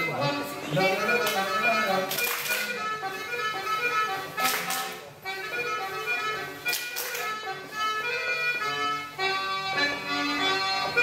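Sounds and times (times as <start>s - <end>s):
folk dance tune: 0.0s - 11.0s
people clapping: 2.1s - 2.8s, 4.4s - 5.0s, 6.7s - 7.4s.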